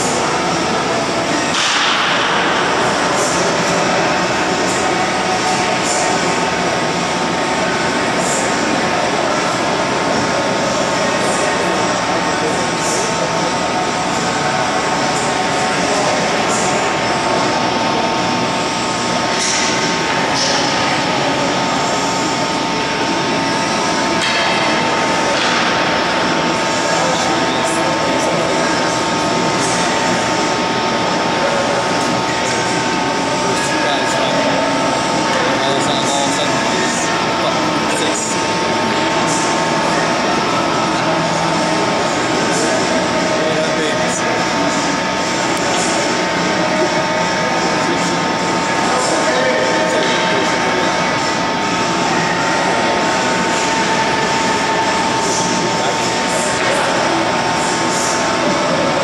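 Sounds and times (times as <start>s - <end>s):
indistinct voices: 0.0s - 59.0s.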